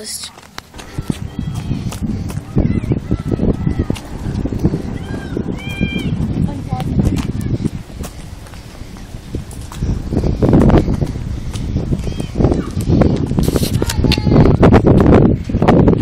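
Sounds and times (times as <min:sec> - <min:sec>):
indistinct voices: 0:00.0 - 0:14.7
low rumbling noise: 0:00.7 - 0:16.0.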